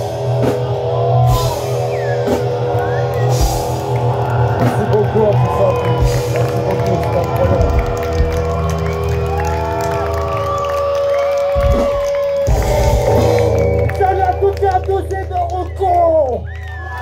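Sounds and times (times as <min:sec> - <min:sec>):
crowd cheering and shouting: 0:00.0 - 0:17.0
live punk band: 0:00.0 - 0:17.0.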